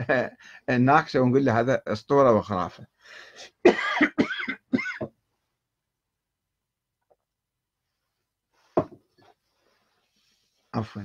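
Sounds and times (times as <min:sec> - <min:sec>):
short breath in: 0:03.0 - 0:03.5
man coughing: 0:03.6 - 0:05.1.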